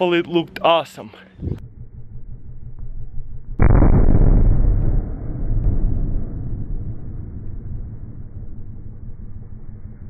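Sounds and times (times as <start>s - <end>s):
balloon bursting with deep boom: 1.4s - 10.0s.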